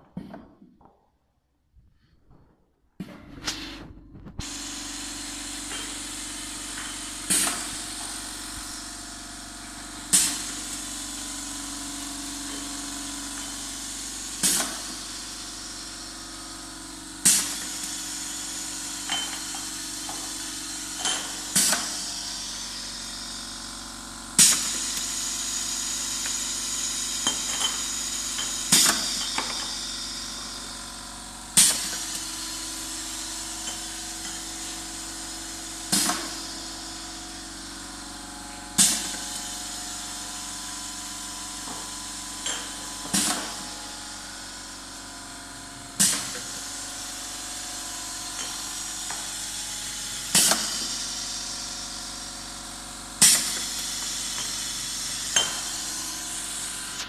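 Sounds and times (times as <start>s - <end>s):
machine hum and hiss: 3.0s - 57.0s
pneumatic machine clack: 5.6s - 8.7s, 10.1s - 11.0s, 13.3s - 15.8s, 17.2s - 22.6s, 24.4s - 30.0s, 31.6s - 36.7s, 38.8s - 40.5s, 41.6s - 44.0s, 45.9s - 51.4s, 53.2s - 57.0s.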